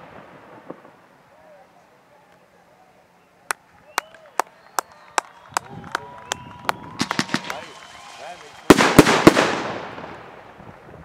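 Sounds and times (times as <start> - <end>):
fireworks bangs: 0.0 - 1.3, 4.6 - 11.0.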